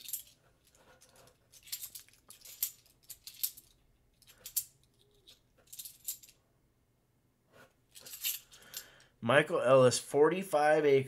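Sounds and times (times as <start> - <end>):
coins clinking: 0.0 - 6.4, 7.9 - 9.0.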